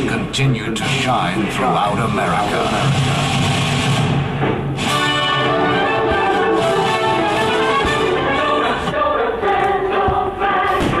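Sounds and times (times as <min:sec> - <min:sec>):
choir with orchestral music: 0:04.9 - 0:11.0.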